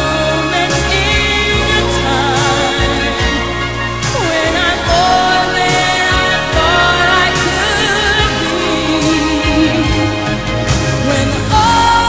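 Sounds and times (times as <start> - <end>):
person singing with vibrato: 0.0 - 12.0
sustained accompaniment and bass: 0.0 - 12.0.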